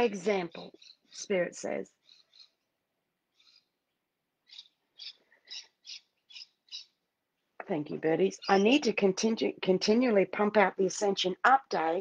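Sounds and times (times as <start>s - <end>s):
faint high bird chirps: 0.1s - 2.6s, 3.3s - 7.0s.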